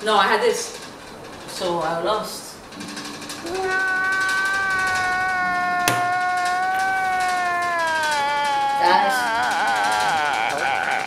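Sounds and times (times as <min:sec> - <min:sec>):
man's high-pitched wailing laugh: 0:03.9 - 0:11.0
sharp click: 0:05.9 - 0:06.5.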